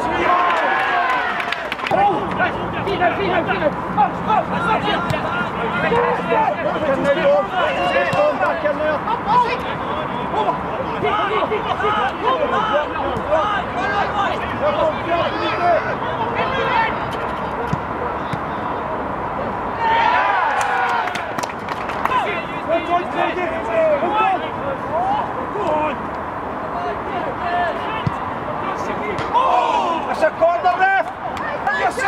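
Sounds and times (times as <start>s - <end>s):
men calling and shouting: 0.0s - 32.0s.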